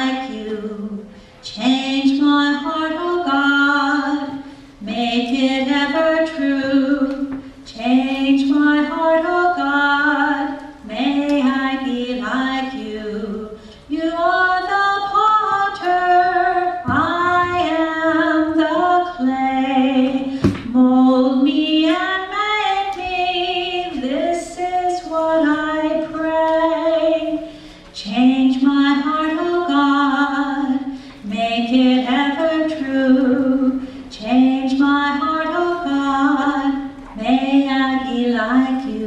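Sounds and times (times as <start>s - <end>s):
woman singing slowly: 0.0s - 39.0s.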